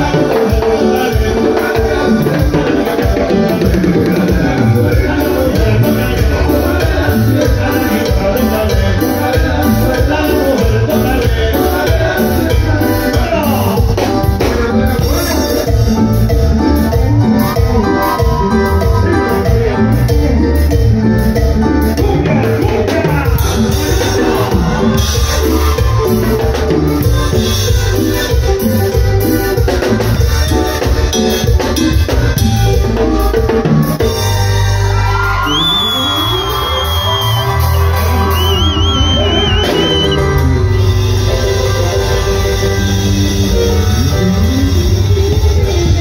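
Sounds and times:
bass: 0:00.0 - 0:46.0
keyboard melody: 0:00.0 - 0:46.0
live band music: 0:00.0 - 0:46.0
steady percussion: 0:00.0 - 0:46.0.

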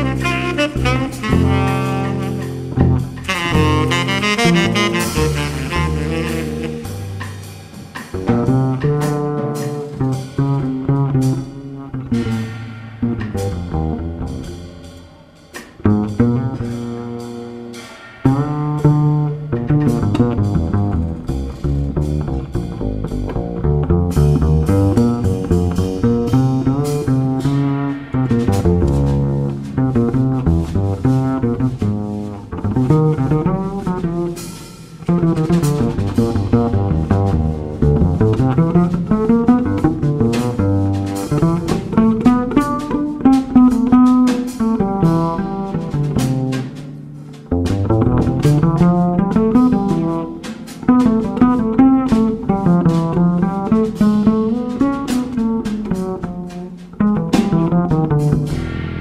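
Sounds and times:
double bass solo: 0:00.0 - 0:15.0, 0:15.6 - 0:59.0
light drum kit and cymbals: 0:00.0 - 0:59.0.

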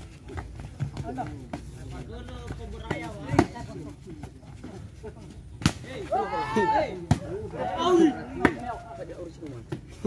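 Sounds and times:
players shouting: 0:05.8 - 0:09.3.

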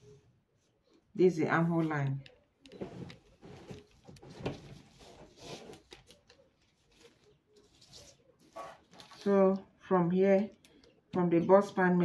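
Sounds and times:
paper rustling: 0:02.8 - 0:09.6.

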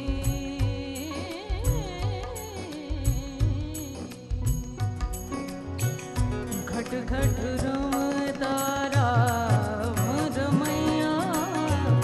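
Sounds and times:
woman singing: 0:00.0 - 0:05.4, 0:06.4 - 0:12.0
acoustic guitar: 0:00.0 - 0:12.0
harmonium: 0:00.0 - 0:12.0
tabla: 0:00.0 - 0:12.0.

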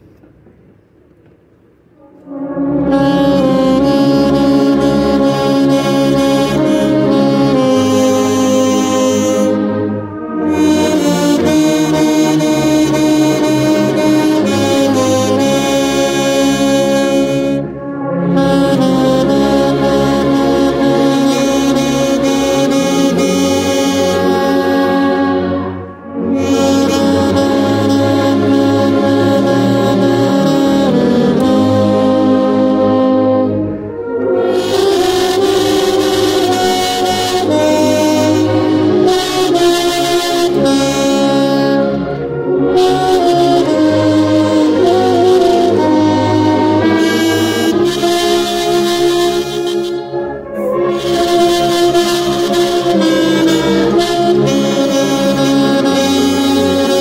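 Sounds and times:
brass ensemble: 0:01.9 - 0:57.0
saxophone sustained notes: 0:02.0 - 0:57.0
wind instruments playing a hymn: 0:02.0 - 0:57.0.

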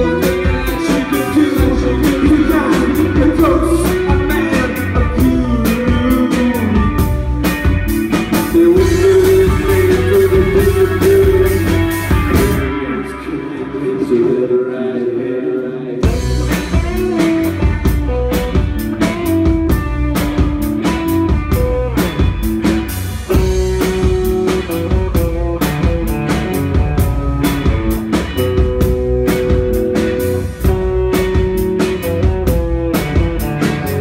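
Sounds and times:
rock drums: 0:00.0 - 0:14.4, 0:16.0 - 0:34.0
bass guitar: 0:00.0 - 0:14.9, 0:15.8 - 0:34.0
electric guitars: 0:00.0 - 0:34.0.

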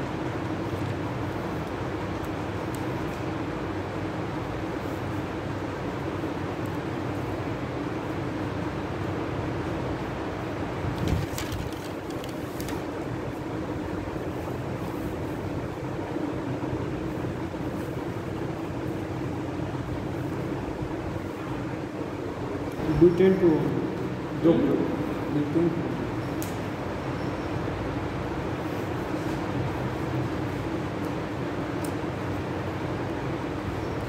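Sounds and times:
hiss with low hum: 0:00.0 - 0:34.0.

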